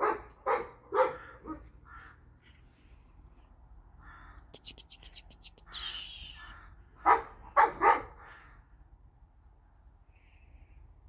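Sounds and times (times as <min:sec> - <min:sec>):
dog barking: 0:00.0 - 0:01.7, 0:07.0 - 0:08.3.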